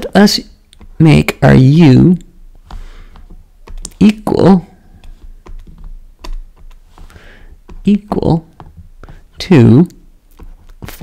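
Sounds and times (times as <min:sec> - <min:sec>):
stylus tapping on pen tablet: 0:02.6 - 0:11.0.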